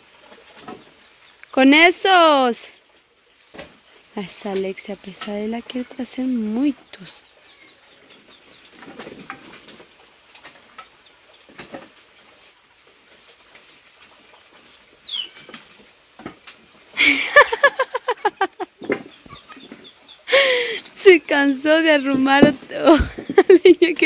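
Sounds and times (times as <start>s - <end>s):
faint farmyard sounds: 5.4s - 16.8s, 18.3s - 20.9s
chicken clucking: 17.6s - 20.2s.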